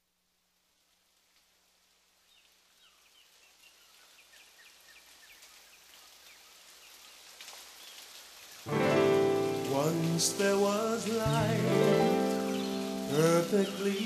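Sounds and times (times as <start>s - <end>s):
rain-like noise: 0.0s - 14.0s
loud sustained music chord: 8.7s - 10.7s, 11.3s - 14.0s.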